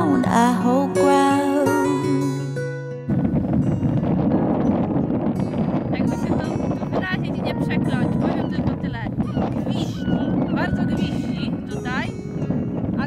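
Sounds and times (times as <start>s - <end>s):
song with acoustic guitar: 0.0s - 13.0s
wind buffeting microphone: 3.0s - 13.0s.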